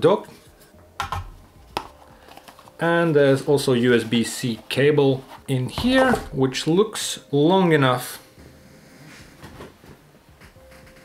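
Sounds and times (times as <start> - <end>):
plastic device handling: 1.0 - 6.4.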